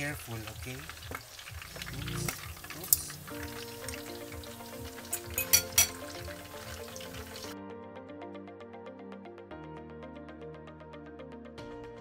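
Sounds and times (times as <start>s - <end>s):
meat deep-frying in oil: 0.0s - 7.6s
background music: 0.0s - 12.0s
metal clinks against pot: 5.1s - 6.1s.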